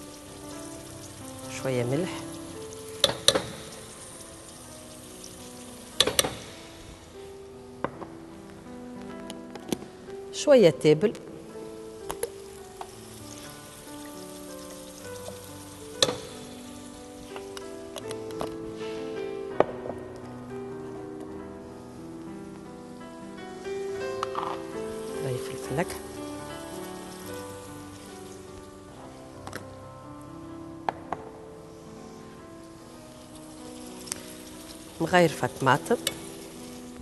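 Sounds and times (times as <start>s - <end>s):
food frying in oil: 0.0s - 7.4s, 11.5s - 18.7s, 21.8s - 30.4s, 31.8s - 37.0s
background music: 0.0s - 37.0s.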